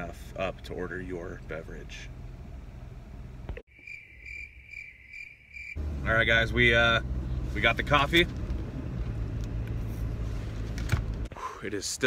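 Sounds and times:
crickets chirping: 0:03.7 - 0:05.8
low car cabin rumble: 0:05.8 - 0:11.5.

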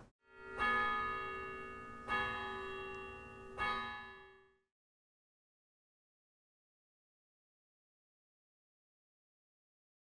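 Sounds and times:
bell-like chimes ringing: 0:00.3 - 0:04.6.

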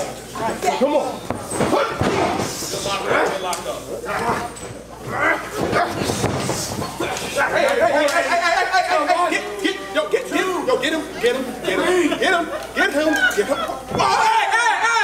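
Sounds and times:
shouts and yells: 0:12.9 - 0:15.0.

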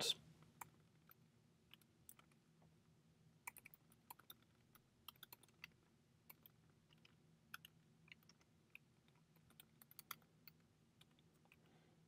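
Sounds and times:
faint typing on a keyboard: 0:00.0 - 0:12.0.

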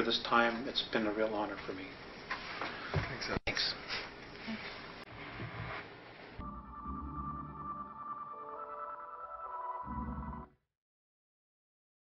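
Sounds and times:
electronic synthesizer music: 0:06.4 - 0:10.6.

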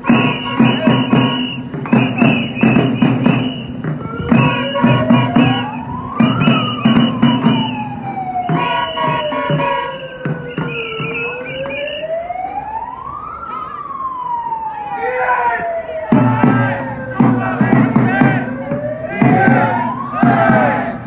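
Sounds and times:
music: 0:00.0 - 0:07.8
siren wailing: 0:00.0 - 0:21.0
voices: 0:00.0 - 0:21.0.

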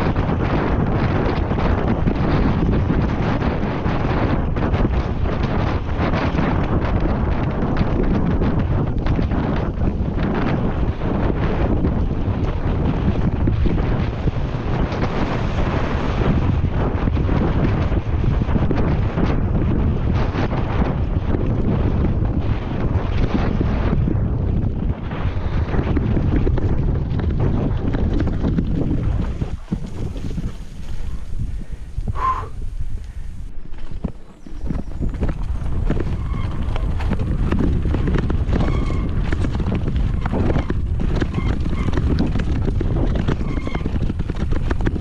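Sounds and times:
bike knocking and rattling: 0:00.0 - 0:45.0
tyres rumbling on dirt trail: 0:00.0 - 0:45.0
wind buffeting microphone: 0:00.0 - 0:45.0.

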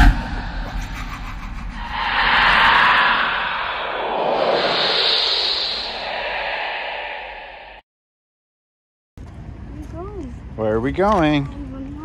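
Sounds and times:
whoosh: 0:00.0 - 0:07.8.

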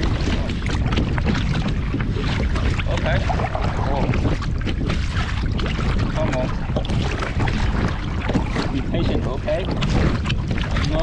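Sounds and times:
paddle blades splashing: 0:00.0 - 0:11.0
waves slapping hull: 0:00.0 - 0:11.0
wind noise on microphone: 0:00.0 - 0:11.0.

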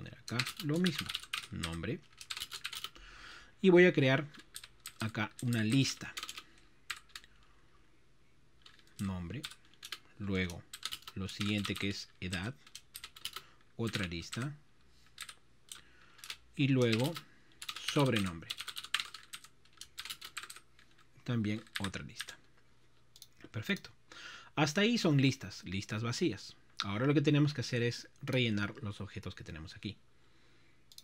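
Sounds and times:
computer keyboard keystrokes: 0:00.3 - 0:03.0, 0:04.3 - 0:07.3, 0:08.6 - 0:14.4, 0:15.2 - 0:21.0.

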